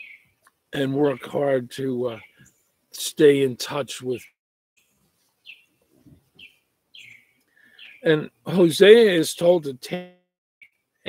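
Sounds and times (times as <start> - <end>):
small bird chirping: 0.0 - 1.4, 4.2 - 8.1.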